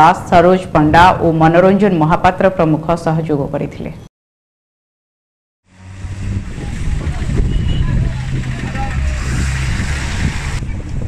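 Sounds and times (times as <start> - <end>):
passing vehicle rushing: 5.7 - 11.0
vehicle engine low hum: 5.7 - 11.0
people's voices: 6.5 - 9.6.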